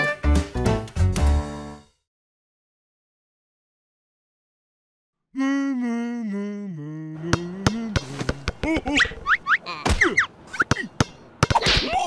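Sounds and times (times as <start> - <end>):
person humming a tune: 5.3 - 9.0.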